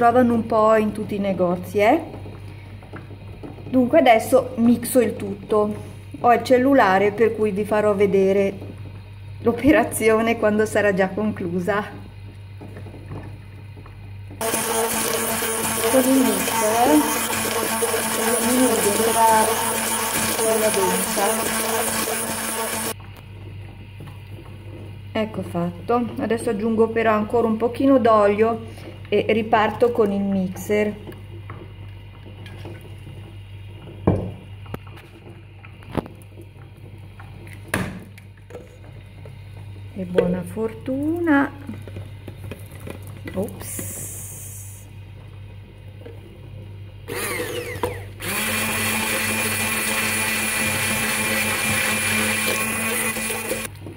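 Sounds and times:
hand blender whining: 14.4s - 23.0s, 47.1s - 53.7s.

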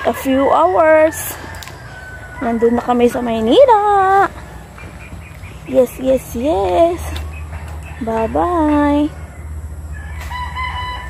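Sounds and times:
rooster crowing: 0.0s - 5.7s, 7.2s - 11.0s.

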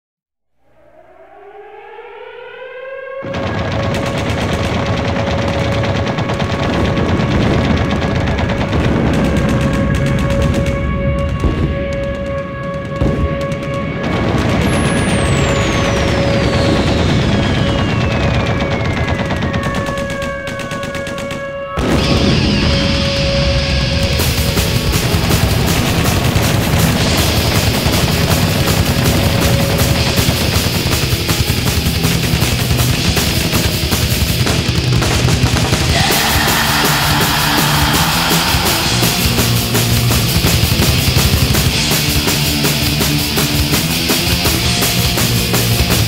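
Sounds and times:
slowly falling whistle: 0.6s - 3.2s, 14.6s - 20.5s, 36.0s - 40.3s
siren-like wail: 0.6s - 31.6s, 35.6s - 41.4s
droning tones: 0.6s - 43.2s
rapid drumming: 3.2s - 46.0s
distorted guitars: 21.8s - 46.0s.

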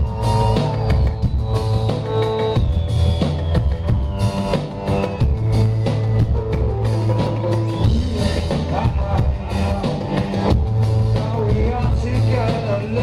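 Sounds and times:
drum kit and bass beat: 0.0s - 13.0s
live rock band playing: 0.0s - 13.0s.

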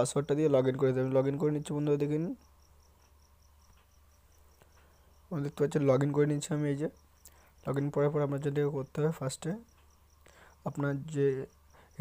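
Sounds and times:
faint high-pitched chirping: 0.0s - 12.0s.

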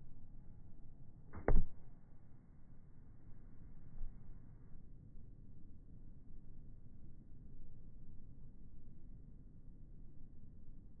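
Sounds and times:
foot kicking football thump: 1.3s - 1.9s.

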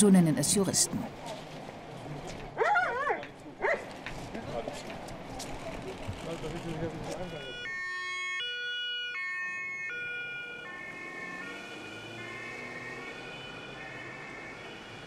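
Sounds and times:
police car two-tone siren: 7.1s - 15.0s.

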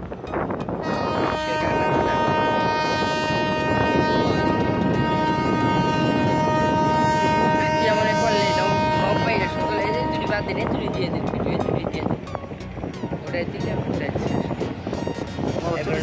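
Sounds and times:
harbour din: 0.0s - 16.0s
boat horn blast: 0.7s - 12.2s, 13.0s - 16.0s.

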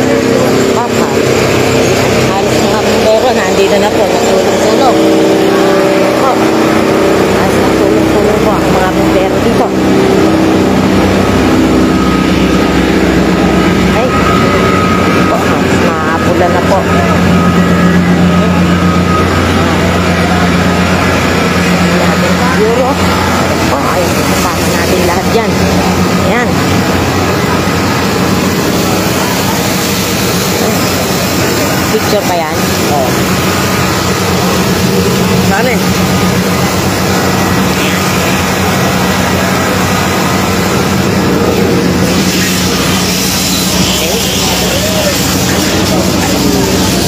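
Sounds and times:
fire truck engine droning: 0.0s - 47.0s
people's voices: 0.0s - 47.0s.

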